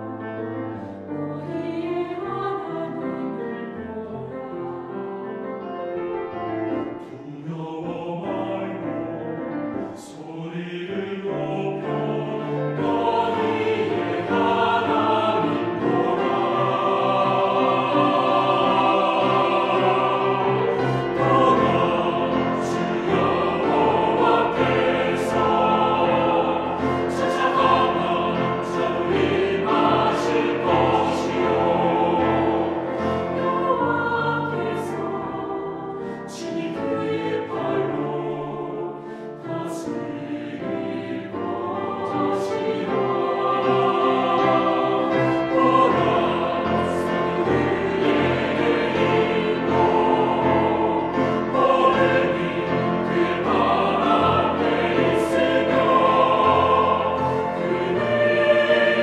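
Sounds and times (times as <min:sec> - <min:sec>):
mixed choir singing: 0:00.0 - 0:59.0.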